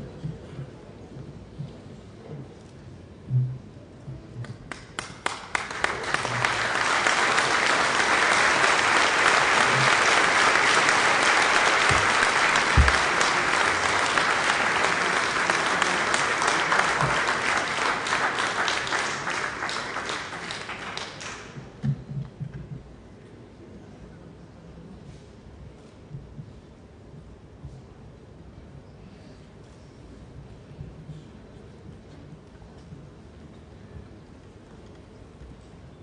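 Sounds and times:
audience applauding: 0:04.7 - 0:21.6.

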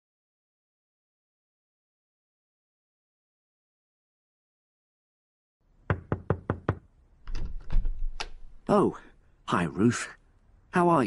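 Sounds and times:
quick knocks on a door: 0:05.9 - 0:08.2.

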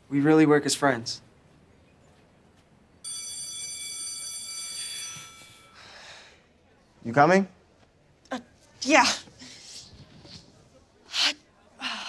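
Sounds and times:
electronic school bell tone: 0:03.0 - 0:06.0.

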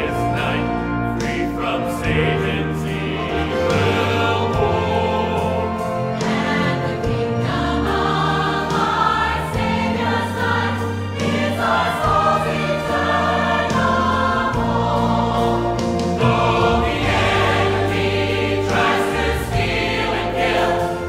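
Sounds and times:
church choir singing a hymn: 0:00.0 - 0:21.0.

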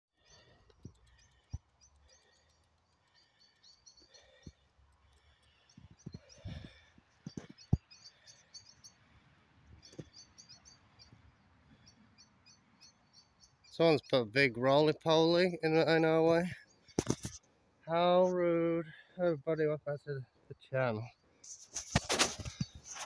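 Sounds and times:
quiet field ambience: 0:00.1 - 0:23.0
small birds chirping: 0:00.1 - 0:23.0.

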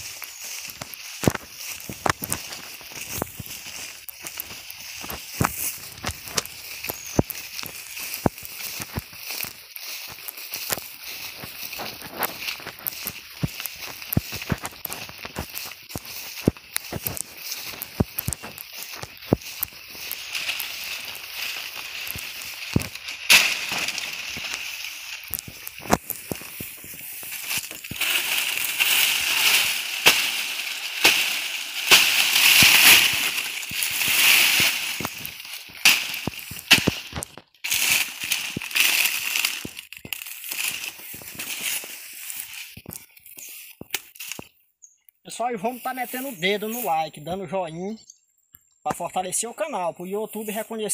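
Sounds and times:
dry leaves rustling: 0:00.0 - 0:44.5, 0:45.5 - 0:47.2
footsteps through grass: 0:00.0 - 0:44.6, 0:45.3 - 0:47.7, 0:49.2 - 0:50.9.

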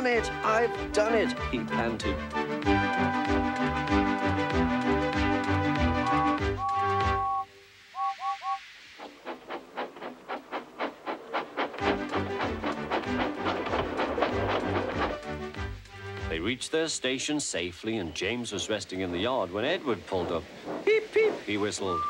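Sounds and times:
background music: 0:00.0 - 0:08.5, 0:11.7 - 0:16.9
steam locomotive whistle: 0:02.6 - 0:08.7, 0:21.6 - 0:22.0
steam engine chuffing: 0:08.0 - 0:16.5, 0:18.5 - 0:22.0.

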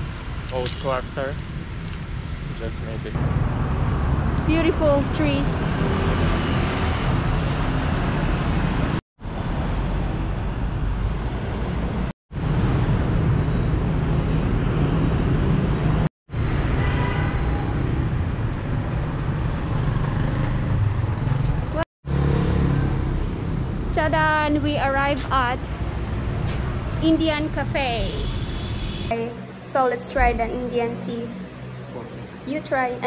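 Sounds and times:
road traffic passing: 0:00.0 - 0:33.0.

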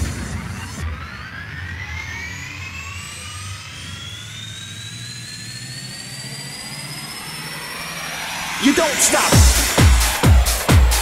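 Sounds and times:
rising whoosh: 0:03.8 - 0:10.7.

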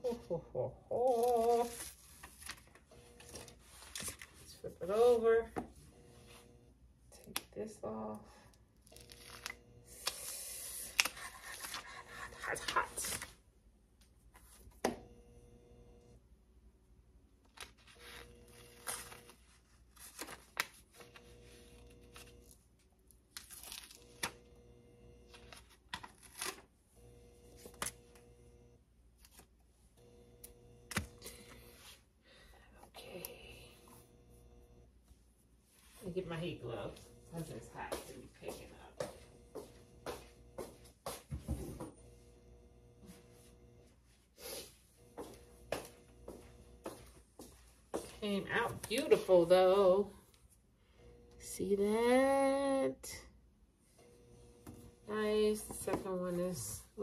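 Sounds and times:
paper and tape tearing rustle: 0:00.9 - 0:04.6, 0:08.8 - 0:13.4, 0:17.4 - 0:22.6, 0:23.2 - 0:24.5, 0:25.3 - 0:26.7.

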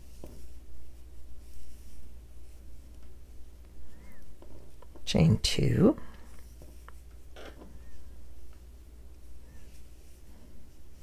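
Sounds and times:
yarn rustling on crochet hook: 0:00.0 - 0:11.0.

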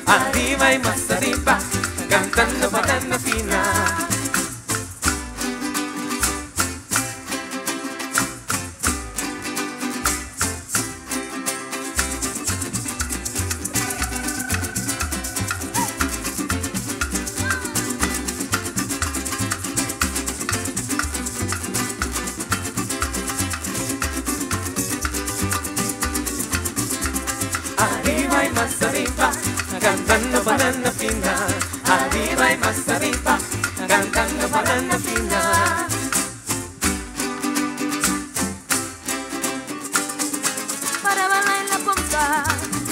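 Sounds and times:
guitars strumming: 0:00.0 - 0:42.9
hand drum: 0:00.0 - 0:42.9
maracas shaking: 0:00.0 - 0:42.9.

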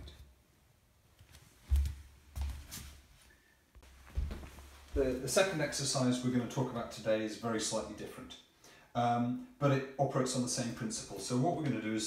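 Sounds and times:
soft low thumps: 0:04.1 - 0:05.2.

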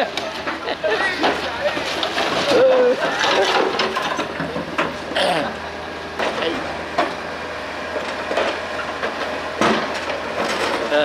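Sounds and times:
mini excavator running: 0:00.0 - 0:11.0
rubble clattering and scraping: 0:00.4 - 0:05.0.

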